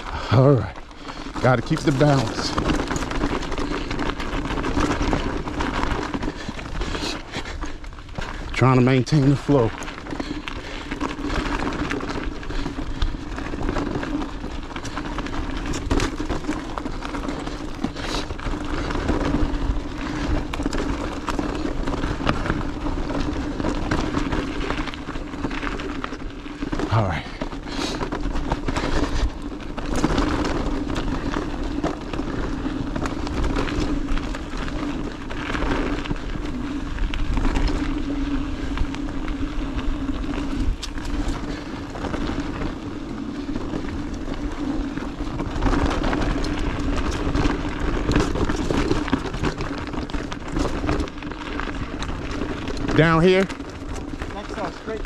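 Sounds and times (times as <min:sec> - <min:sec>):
bike rattling over rough ground: 0:00.0 - 0:55.0.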